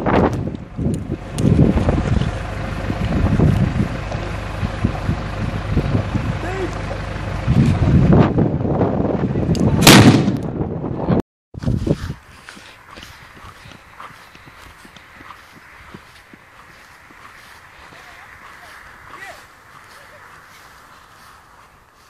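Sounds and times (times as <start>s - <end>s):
wind rumbling on microphone: 0.0s - 22.0s
loud firecracker bang: 9.8s - 10.6s.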